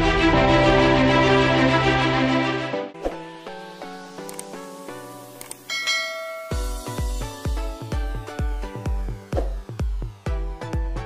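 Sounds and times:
background music: 0:00.0 - 0:11.0
notification bell ding: 0:05.7 - 0:07.1
bass-heavy electronic beat: 0:06.5 - 0:11.0.

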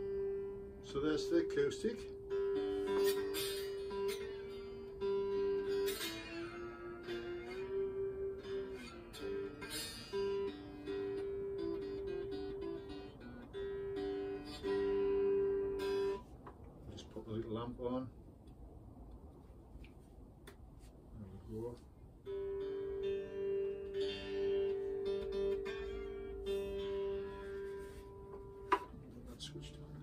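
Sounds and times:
slide guitar strummed chords: 0:00.0 - 0:16.2, 0:22.2 - 0:30.0.

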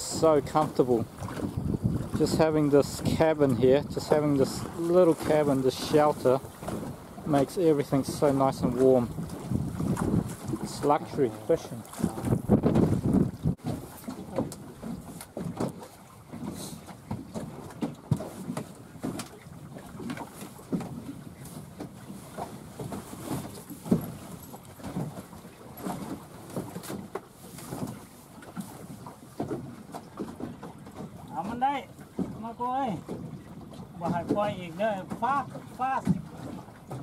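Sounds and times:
wind buffeting microphone: 0:00.0 - 0:28.0
water slapping boat hull: 0:00.0 - 0:37.0.

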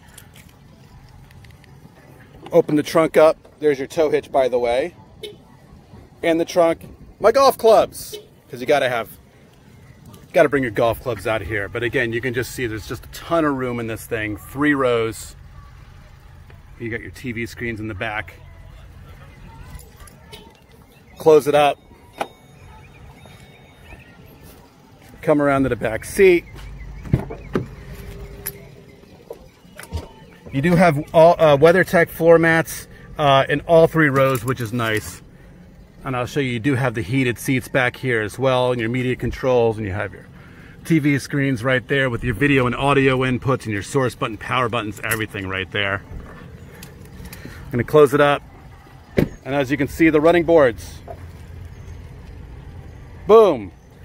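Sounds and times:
low steady rumble: 0:21.8 - 0:54.0.

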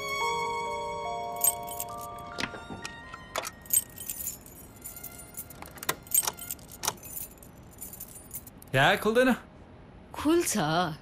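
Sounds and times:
keys jangling in drawer lock: 0:01.4 - 0:02.2, 0:03.4 - 0:08.6.

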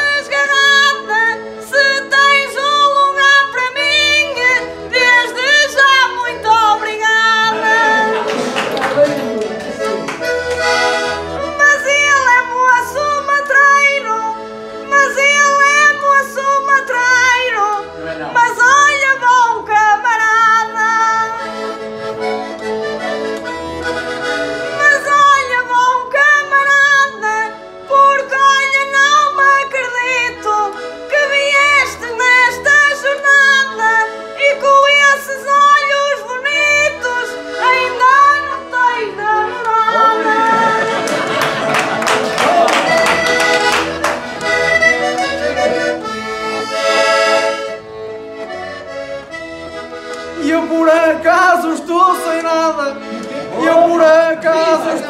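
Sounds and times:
woman singing: 0:00.0 - 0:08.2, 0:11.5 - 0:17.8, 0:18.4 - 0:21.4, 0:24.8 - 0:41.0
concertina playing chords: 0:00.0 - 0:55.0.

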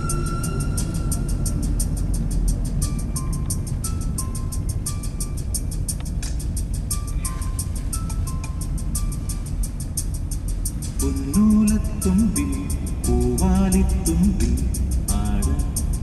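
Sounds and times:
car driving rumble: 0:00.0 - 0:16.0
music with ticking beat: 0:00.0 - 0:16.0.

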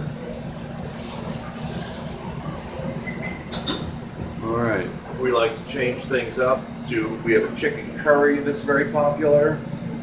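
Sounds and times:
shop background rumble: 0:00.0 - 0:10.0
faint high beep: 0:03.0 - 0:03.5.

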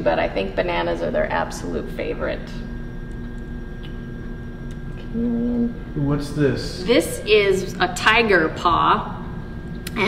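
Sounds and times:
background hum: 0:00.0 - 0:10.0.

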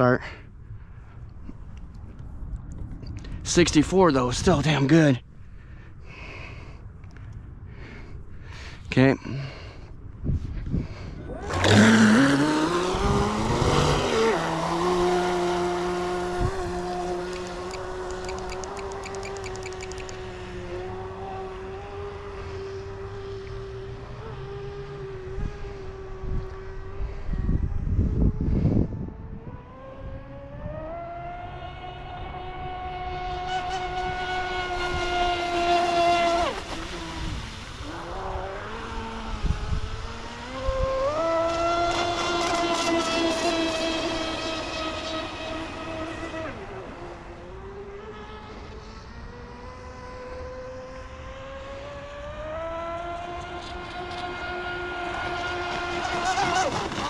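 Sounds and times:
boat motor high whine: 0:00.8 - 0:57.0.

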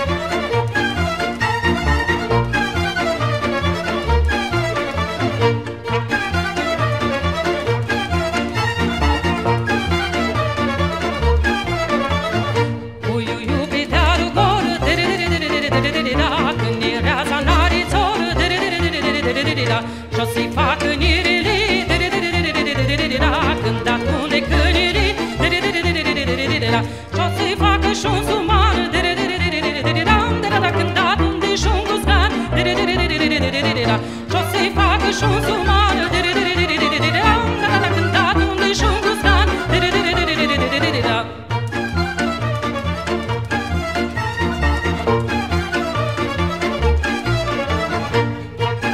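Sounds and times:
folk melody with wavering vibrato: 0:00.0 - 0:48.9.

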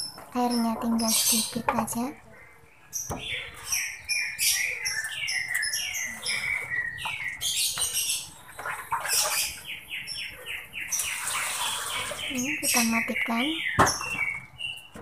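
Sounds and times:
small bird chirping: 0:00.0 - 0:15.0.

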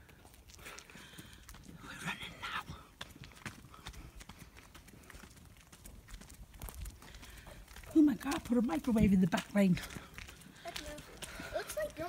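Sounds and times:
faint running footsteps: 0:00.0 - 0:12.0.

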